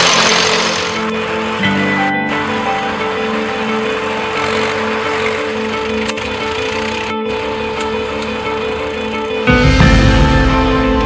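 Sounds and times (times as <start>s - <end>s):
film soundtrack music with drone: 0.0s - 11.0s.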